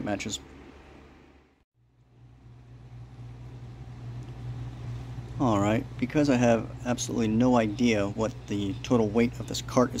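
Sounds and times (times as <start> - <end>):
low hum with faint hiss: 0.0 - 10.0.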